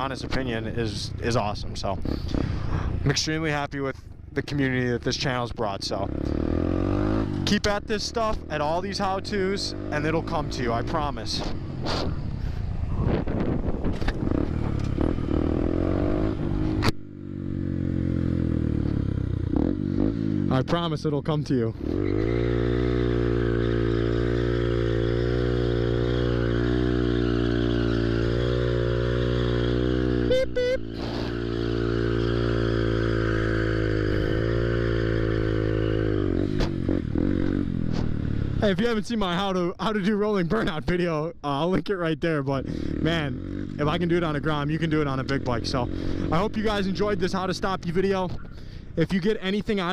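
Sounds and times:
motorcycle engine revving: 0.0 - 3.4, 4.0 - 39.1, 42.5 - 49.9
wind noise: 11.4 - 16.9.

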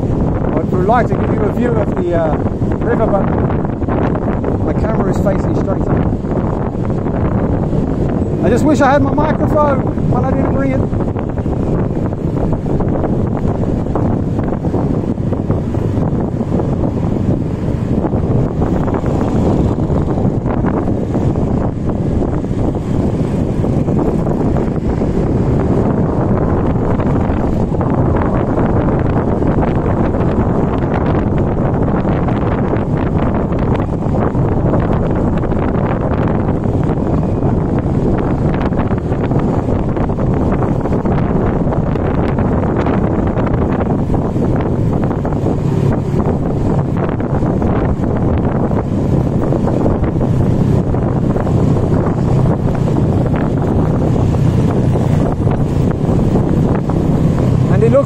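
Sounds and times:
scooter engine humming: 0.0 - 4.8, 5.4 - 58.0
wind buffeting microphone: 0.0 - 58.0.

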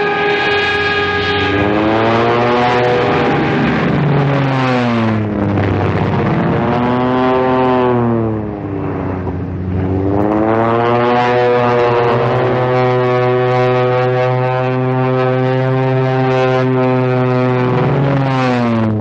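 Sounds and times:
plane piston engine droning: 0.0 - 19.0.

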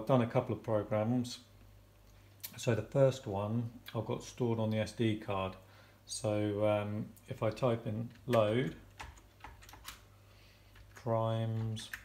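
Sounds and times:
keyboard keystrokes: 8.1 - 10.0.

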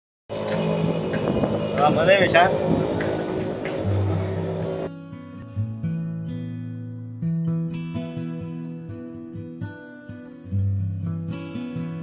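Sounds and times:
background music with sustained notes: 0.3 - 6.9.

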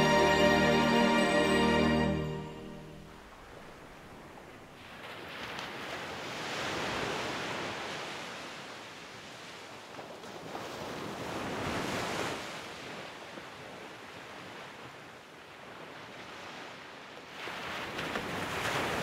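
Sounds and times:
waves washing in: 0.0 - 15.0, 15.6 - 19.0.

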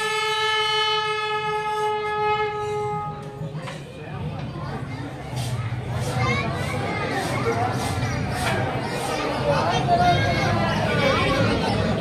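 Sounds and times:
brass horn long note: 0.0 - 3.4.

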